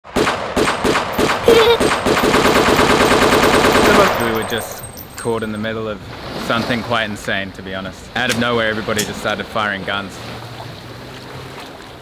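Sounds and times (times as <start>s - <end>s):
gunshots: 0.0s - 4.8s
rapid automatic gunfire: 0.1s - 4.7s.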